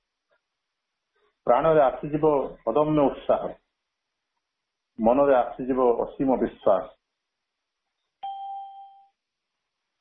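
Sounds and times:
bell-like chime: 8.2s - 9.2s.

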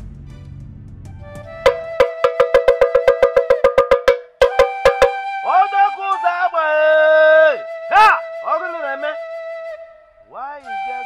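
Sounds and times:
pitched sound sliding upward: 1.4s - 6.2s
metal gong struck rapidly: 1.7s - 5.2s.

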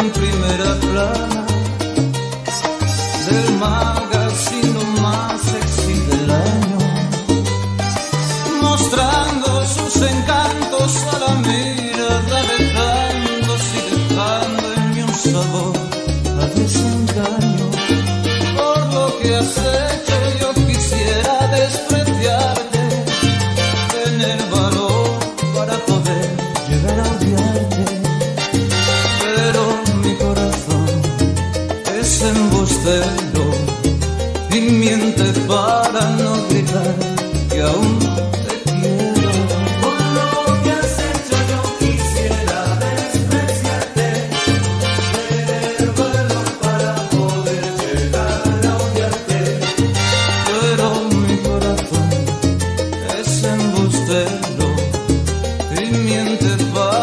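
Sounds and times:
salsa music: 0.0s - 57.0s.

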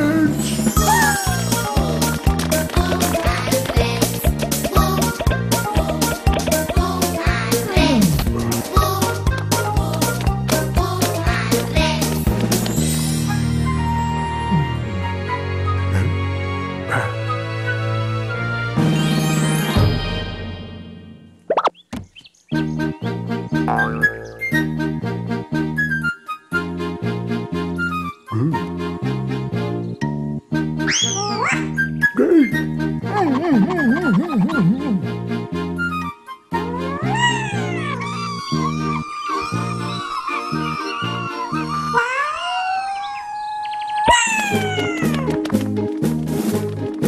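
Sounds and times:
background music with plucked bass: 0.0s - 12.7s, 22.7s - 25.4s, 28.3s - 35.5s
high-pitched cartoon cry: 0.8s - 1.6s, 36.6s - 45.3s
cartoon plop sound effects: 21.5s - 21.8s, 23.7s - 24.7s.

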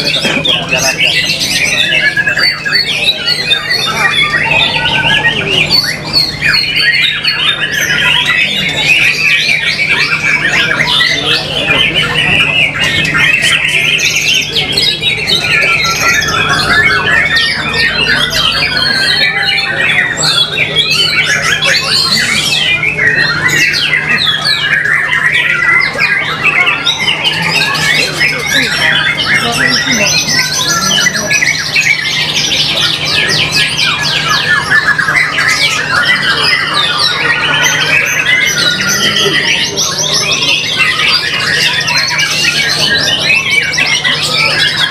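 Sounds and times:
songbird singing: 0.0s - 44.9s.

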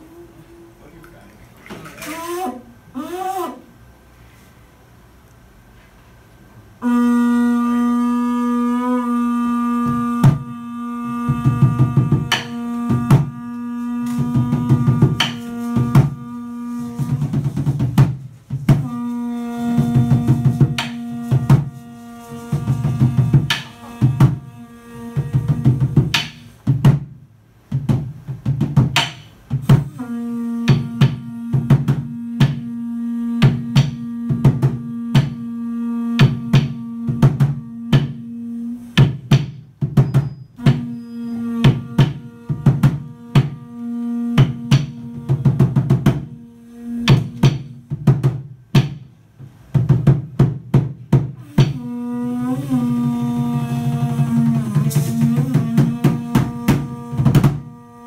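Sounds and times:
sustained low blown tone: 6.8s - 17.3s, 18.7s - 25.8s, 29.8s - 39.0s, 51.5s - 58.0s
wooden drum beaten with sticks: 9.6s - 58.0s.

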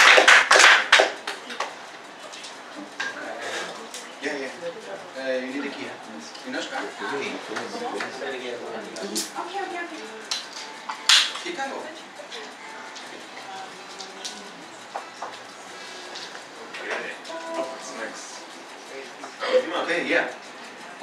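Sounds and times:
murmured talk: 0.9s - 21.0s.

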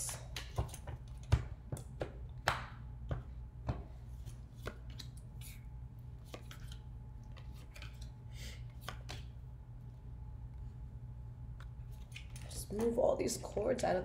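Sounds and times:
playing cards tapping and snapping: 0.0s - 5.6s, 6.2s - 8.1s, 8.7s - 9.3s
low steady hum: 0.0s - 14.0s.

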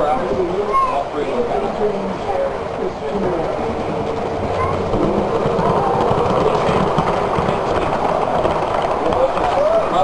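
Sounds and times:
model train wheels rumbling: 0.0s - 10.0s
rapid clicking over track: 1.4s - 10.0s.

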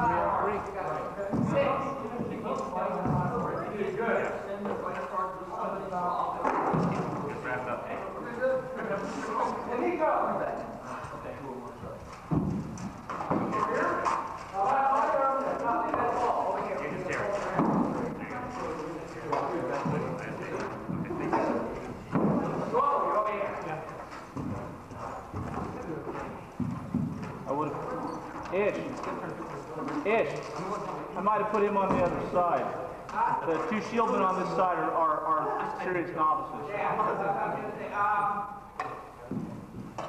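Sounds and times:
people chatting: 0.0s - 12.1s, 13.1s - 26.7s, 27.4s - 38.6s.

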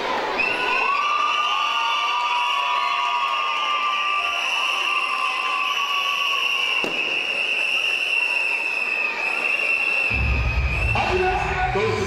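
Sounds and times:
crowd cheering: 0.0s - 12.0s.

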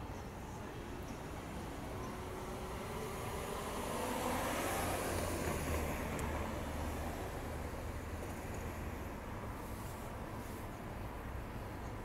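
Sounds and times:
car passing: 1.4s - 8.2s.

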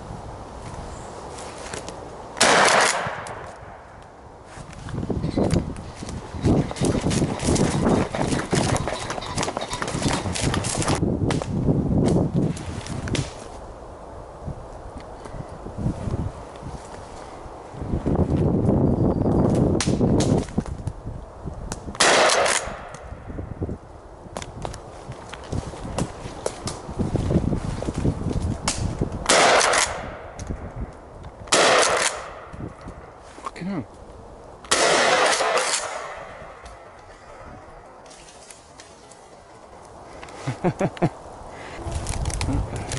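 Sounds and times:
footsteps rustling dry leaves: 0.5s - 2.0s, 24.8s - 29.0s
shotgun shots: 2.4s - 3.5s, 22.0s - 22.9s, 29.3s - 30.2s, 31.5s - 32.5s, 34.7s - 36.5s.

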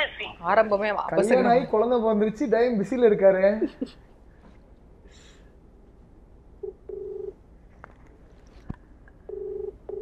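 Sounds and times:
phone ringback tone: 6.6s - 7.3s, 9.3s - 10.0s.

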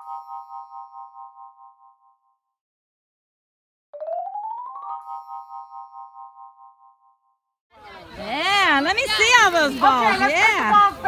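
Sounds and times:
wavering chime chord: 0.0s - 2.4s, 4.1s - 7.4s.

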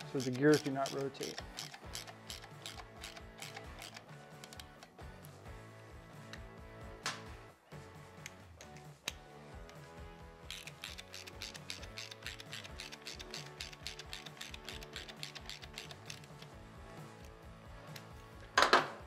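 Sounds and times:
socket ratchet clicking: 0.0s - 5.0s, 10.5s - 16.6s.

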